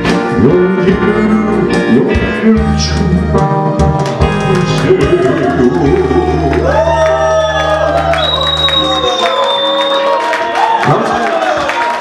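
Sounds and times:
person singing: 0:00.0 - 0:08.1
live band playing: 0:00.0 - 0:10.7
audience cheering and shouting: 0:04.2 - 0:12.0.

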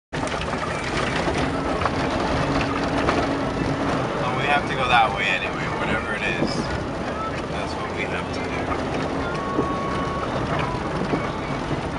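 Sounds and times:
rattles and knocks: 0:00.2 - 0:11.9
vehicle road noise inside cabin: 0:00.2 - 0:11.9.

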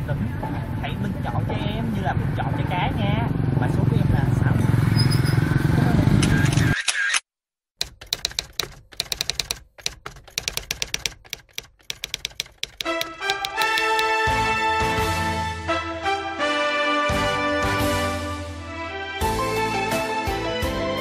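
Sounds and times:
typewriter key clacks: 0:07.8 - 0:14.1.

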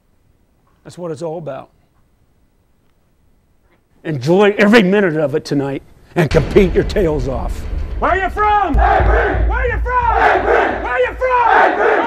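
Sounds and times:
football players chanting in unison: 0:08.8 - 0:09.5, 0:10.1 - 0:12.0.

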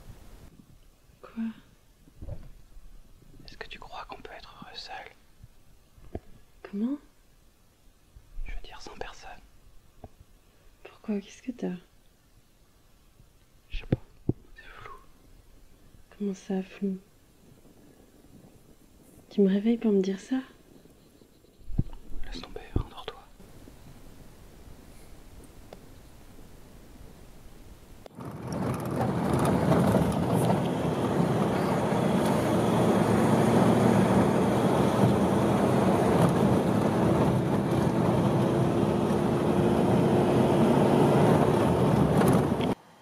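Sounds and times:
person whispering: 0:01.2 - 0:01.7, 0:03.4 - 0:05.2, 0:08.4 - 0:09.5, 0:10.8 - 0:11.7, 0:13.7 - 0:15.1, 0:22.2 - 0:23.4
soft low thumps: 0:21.6 - 0:23.0.

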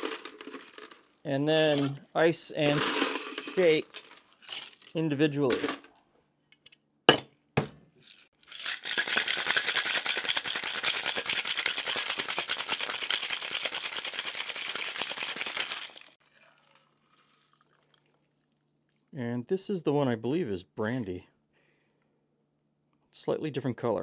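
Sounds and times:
ice rattling in a shaker: 0:00.0 - 0:02.0, 0:02.7 - 0:04.9, 0:08.0 - 0:18.4
shaker tin clanking on glass: 0:08.1 - 0:16.1.

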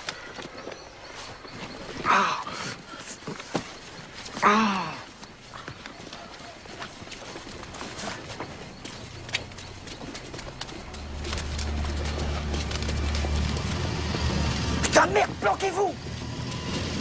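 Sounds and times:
footsteps and small knocks: 0:02.8 - 0:14.9.

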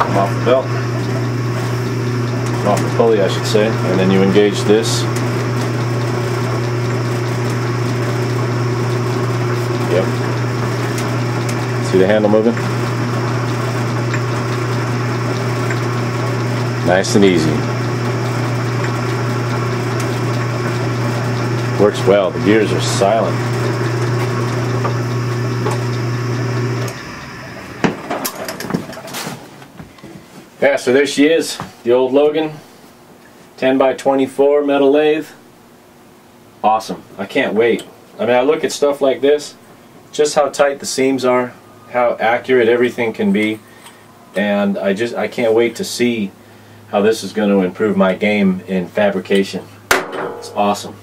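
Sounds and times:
metal lathe motor humming: 0:00.0 - 0:29.1
sharp clicks and knocks: 0:49.9 - 0:50.9.

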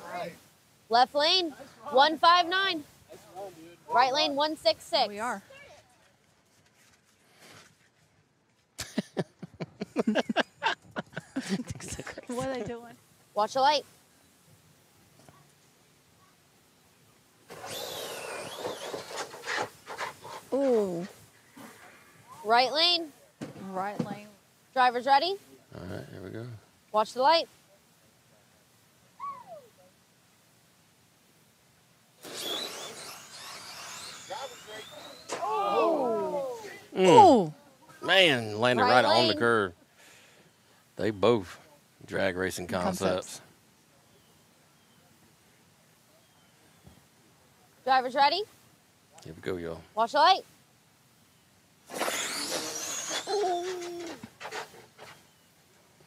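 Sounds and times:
rc car motor whine: 0:17.5 - 0:21.1, 0:32.2 - 0:36.7, 0:51.9 - 0:55.2
tyre noise: 0:17.5 - 0:22.5, 0:32.2 - 0:37.4, 0:51.9 - 0:55.4
held ooh-like voice: 0:35.3 - 0:37.6, 0:52.5 - 0:54.3.

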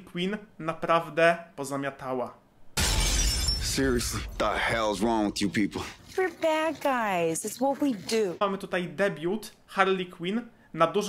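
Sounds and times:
glass window shattering: 0:02.8 - 0:04.5
man's voice: 0:03.8 - 0:06.0.

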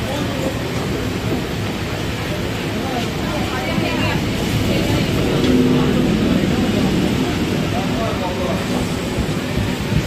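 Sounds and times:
heavy rain hiss: 0:00.0 - 0:10.0
electric train humming past: 0:00.2 - 0:10.0.

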